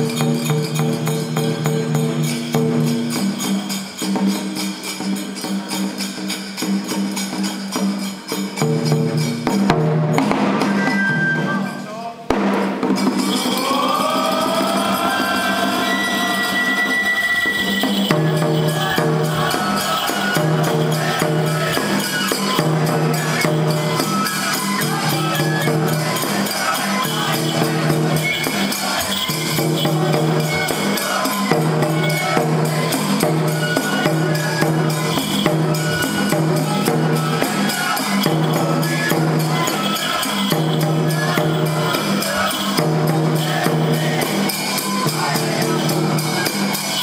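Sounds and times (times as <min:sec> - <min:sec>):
small metal hand cymbals clashing: 0:00.0 - 0:47.0
taiko drum beats: 0:00.0 - 0:47.0
pitched melodic parts: 0:10.0 - 0:43.9.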